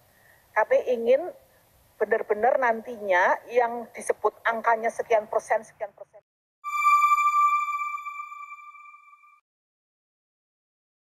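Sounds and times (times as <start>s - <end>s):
bell-like electronic chime: 6.6s - 9.4s.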